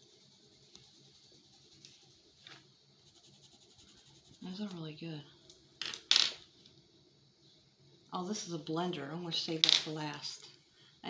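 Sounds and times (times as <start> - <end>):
pencil clattering on countertop: 5.8 - 6.4.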